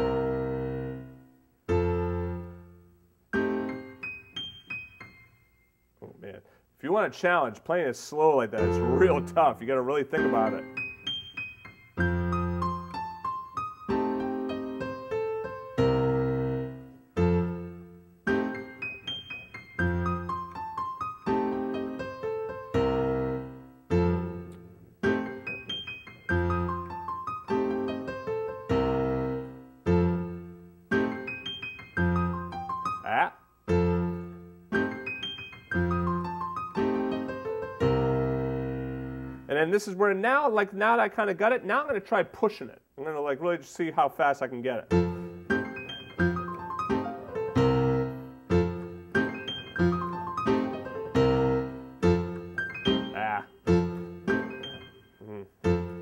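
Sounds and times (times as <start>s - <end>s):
piano played slowly: 0.0s - 5.7s, 8.6s - 39.5s, 44.9s - 56.0s.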